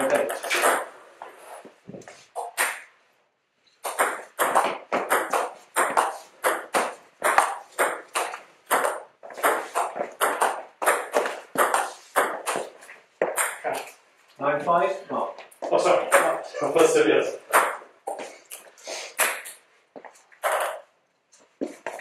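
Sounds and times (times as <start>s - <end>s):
table tennis ball rally: 0.0s - 1.0s, 2.4s - 2.9s, 3.8s - 14.0s, 15.9s - 18.3s, 19.1s - 19.6s, 20.4s - 20.9s.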